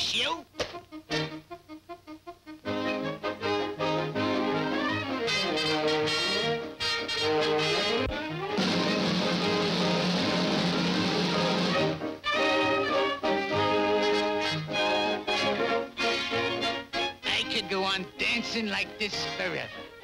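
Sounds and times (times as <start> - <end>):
brass cartoon orchestra music: 0.2 - 20.0.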